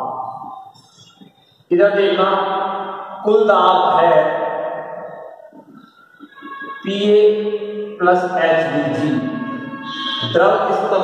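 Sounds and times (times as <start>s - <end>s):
person singing long notes: 8.7s - 10.7s.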